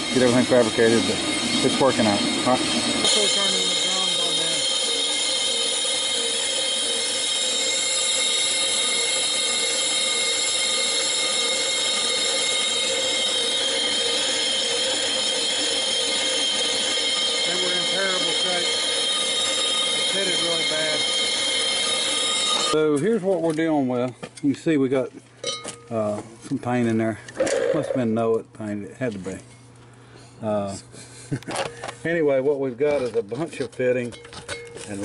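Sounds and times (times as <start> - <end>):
lathe whine: 0.0 - 22.9.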